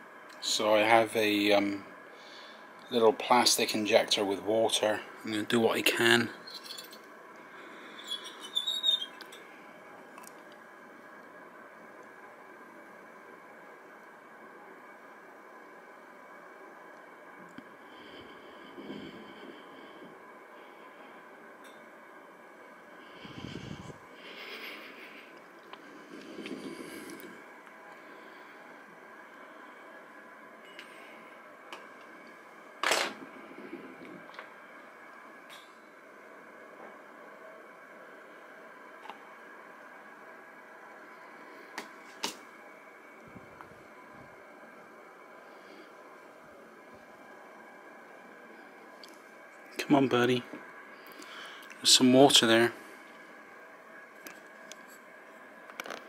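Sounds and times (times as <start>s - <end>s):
faint steady hum: 0.0s - 56.0s.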